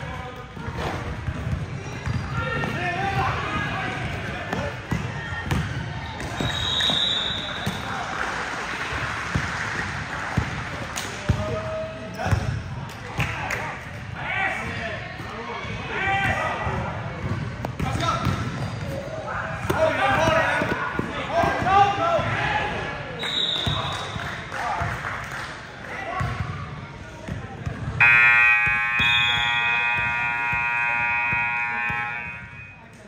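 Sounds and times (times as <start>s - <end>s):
scoreboard buzzer long tone: 28.0s - 32.8s.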